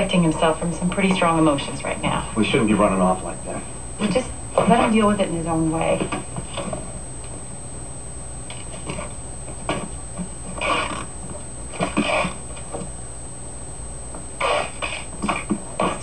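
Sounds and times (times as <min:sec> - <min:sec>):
low steady hum: 0:00.0 - 0:16.0
person snorting: 0:10.5 - 0:11.1, 0:11.7 - 0:12.4, 0:14.4 - 0:16.0.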